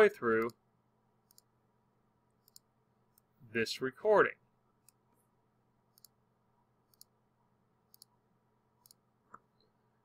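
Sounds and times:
computer mouse clicks: 1.2 - 1.5, 2.4 - 3.3, 5.9 - 6.2, 6.9 - 7.2, 7.9 - 8.1, 8.8 - 9.5.

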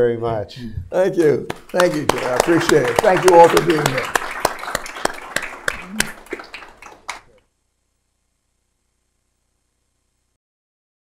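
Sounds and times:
applause hand claps: 1.2 - 7.4.

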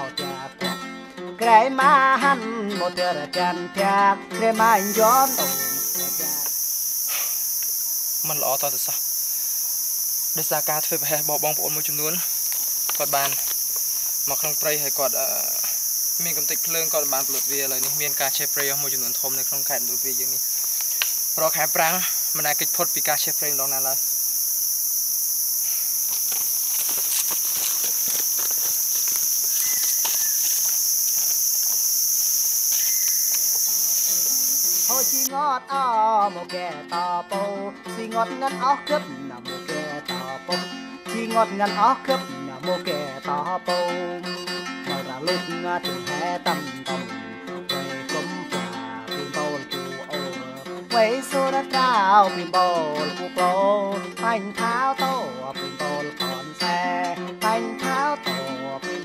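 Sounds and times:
plucked-string music: 0.0 - 6.5, 35.3 - 59.0
high-pitched insect chorus: 4.6 - 35.3.

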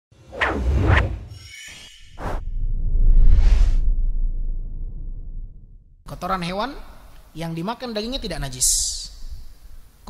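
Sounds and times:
short sharp swish: 0.2 - 1.3
whooshes with deep bass: 2.2 - 5.8
low rumble: 2.4 - 6.0.

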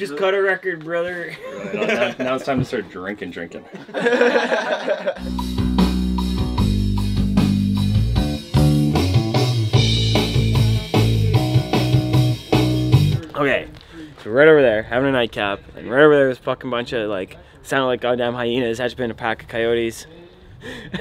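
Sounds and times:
person laughing: 1.3 - 2.5, 3.8 - 5.4, 20.6 - 21.0
rock music with bass and drums: 5.2 - 13.2.

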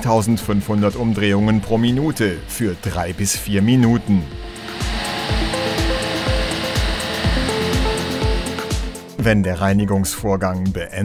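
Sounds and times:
diesel exhaust rushing hiss: 0.0 - 9.2
background music with steady beat: 0.0 - 11.0.

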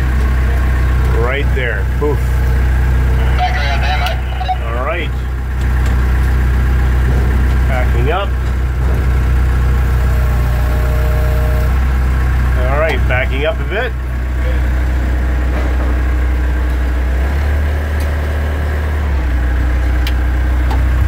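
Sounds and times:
forklift engine idling: 0.0 - 21.0.

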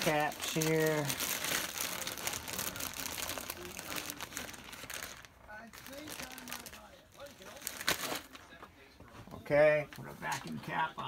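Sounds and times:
plastic bag crinkling: 0.0 - 8.4.

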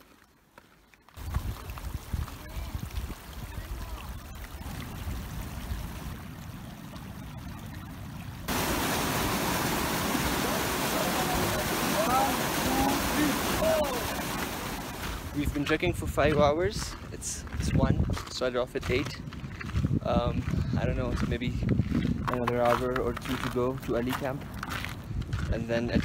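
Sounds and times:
rushing stream: 0.0 - 16.4.

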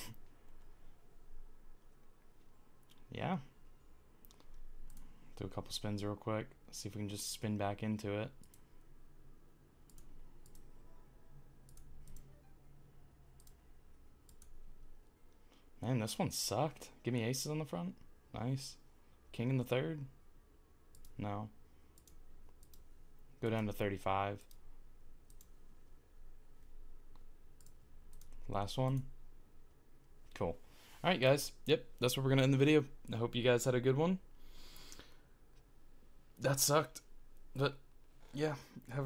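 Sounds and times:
computer mouse clicks: 4.2 - 5.1, 8.4 - 8.8, 9.8 - 10.7, 11.7 - 12.4, 13.4 - 13.6, 14.2 - 14.6, 20.9 - 21.2, 21.9 - 22.9, 24.4 - 24.6, 25.2 - 25.6, 26.6 - 29.1.

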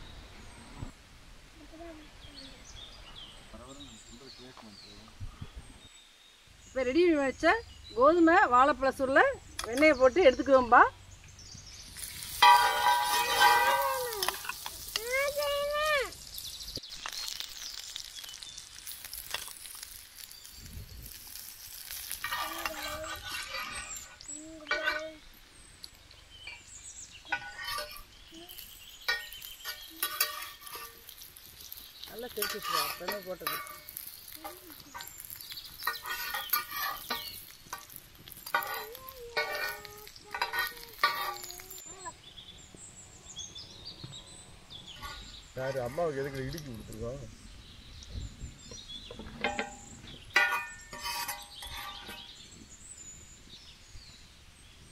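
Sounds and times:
food sizzling in oil: 11.7 - 43.2, 44.9 - 54.9.

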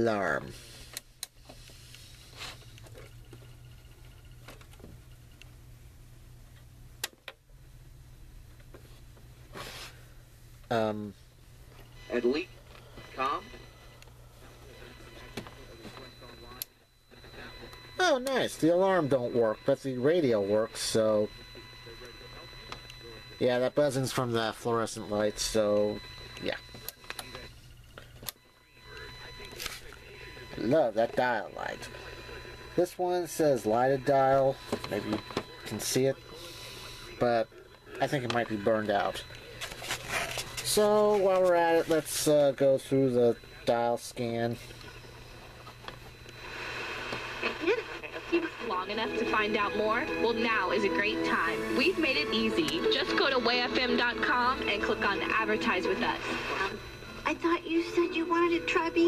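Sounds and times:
fluorescent lights buzzing: 0.0 - 59.0
steady low hum: 0.0 - 59.0.

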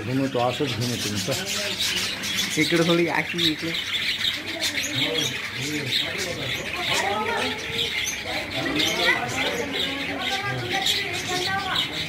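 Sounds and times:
birds chirping: 0.0 - 12.0
people talking: 4.4 - 12.0.

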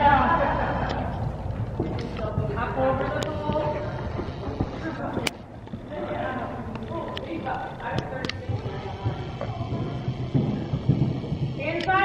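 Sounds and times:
horse hooves trotting on sand: 0.7 - 12.0.

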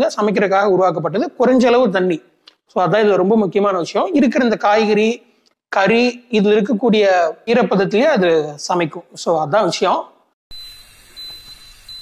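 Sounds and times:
high-pitched electronic beeping: 10.5 - 12.0.

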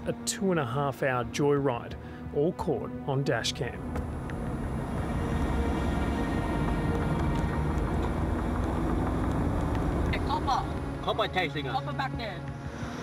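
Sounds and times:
car engine and road noise: 3.3 - 13.0
people talking: 10.2 - 12.4.

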